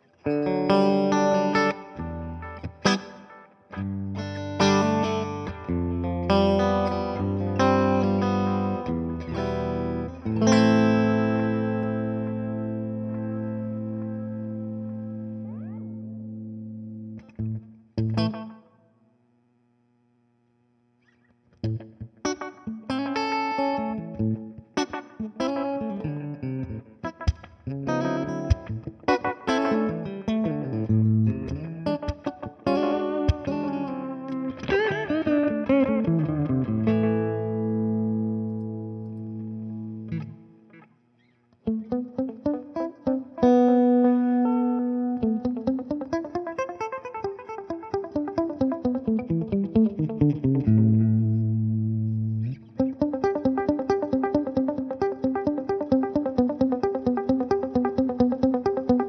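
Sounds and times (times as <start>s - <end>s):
electric guitar with delay: 0.0s - 18.7s, 21.0s - 59.0s.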